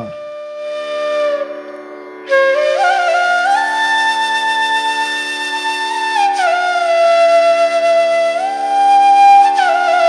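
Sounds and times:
wind instrument tone sliding down: 0.0s - 0.2s.

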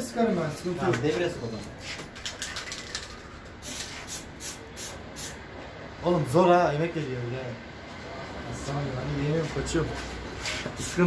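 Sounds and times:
spray paint can hissing: 1.8s - 5.4s.

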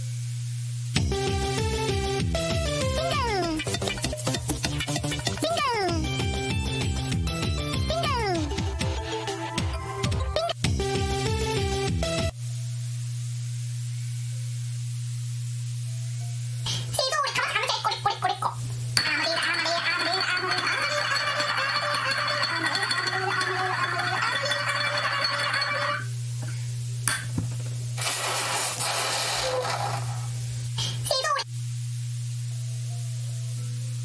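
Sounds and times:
music from video playback: 1.0s - 5.4s, 6.0s - 12.3s
voices from video playback: 5.3s - 6.1s, 7.8s - 9.1s, 16.7s - 21.1s.

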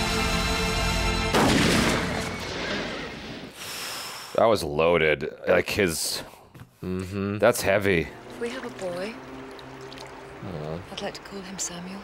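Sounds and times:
loud boom: 1.3s - 3.6s
orchestral sustained chord: 7.9s - 11.4s.

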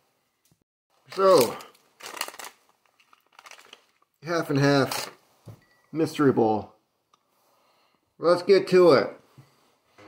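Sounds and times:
plastic pouch crinkling: 1.1s - 5.2s.

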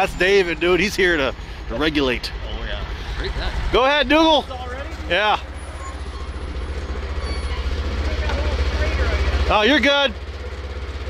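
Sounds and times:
engine running at low revs: 0.0s - 11.0s.

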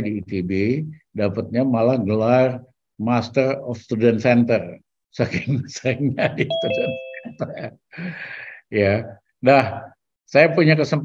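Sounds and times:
man talking: 0.0s - 11.0s
two-note chime: 6.5s - 7.7s.

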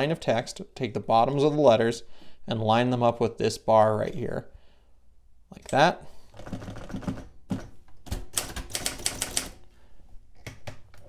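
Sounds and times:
typewriter keystrokes: 8.1s - 9.6s.

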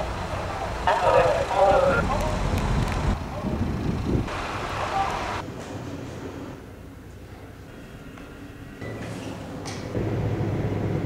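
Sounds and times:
diesel train engine idling: 0.0s - 5.4s
wind noise on microphone: 1.2s - 4.4s.

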